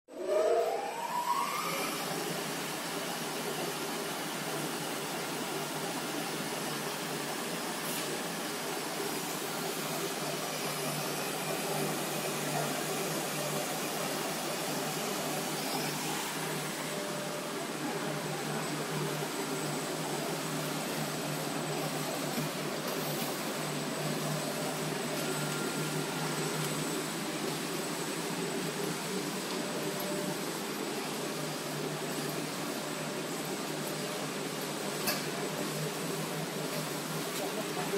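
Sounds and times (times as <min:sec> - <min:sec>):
folder-gluer machine whirring: 0:00.1 - 0:37.9.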